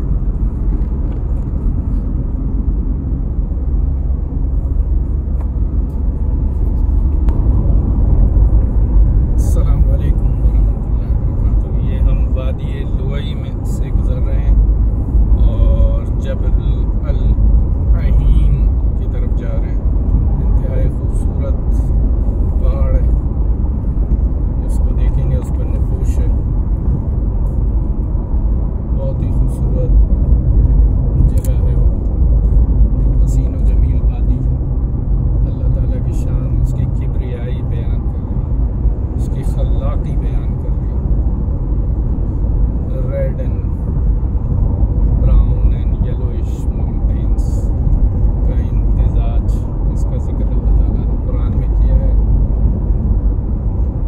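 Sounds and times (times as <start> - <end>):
car rumbling along highway: 0.0 - 54.0.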